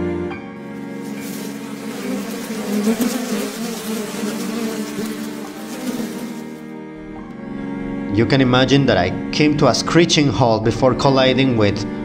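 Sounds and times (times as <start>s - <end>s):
soft background music: 0.0s - 3.6s, 4.3s - 12.0s
flies buzzing: 0.6s - 6.8s
faint crackles: 0.8s - 6.6s.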